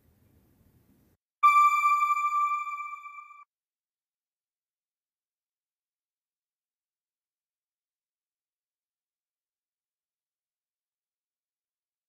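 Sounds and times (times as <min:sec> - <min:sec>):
electronic chime tone: 0:01.4 - 0:03.4.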